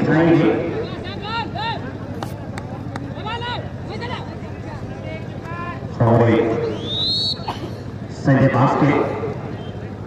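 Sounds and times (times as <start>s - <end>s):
murmur of outdoor crowd: 0.0s - 10.0s.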